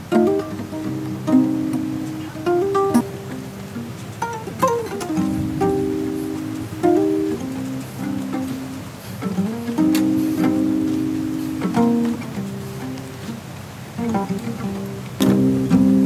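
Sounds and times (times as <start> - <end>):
guitars plucking slow notes: 0.0 - 16.0.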